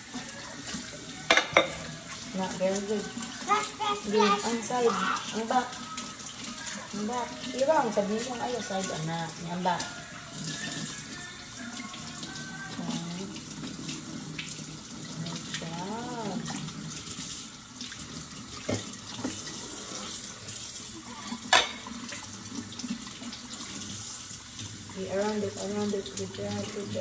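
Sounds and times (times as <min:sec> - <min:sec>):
faucet running onto plate: 0:00.0 - 0:27.0.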